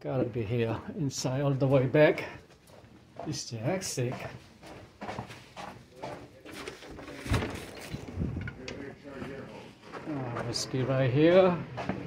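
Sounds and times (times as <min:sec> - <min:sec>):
footsteps in a corridor: 0:01.4 - 0:12.0
door being pushed open: 0:07.0 - 0:08.6.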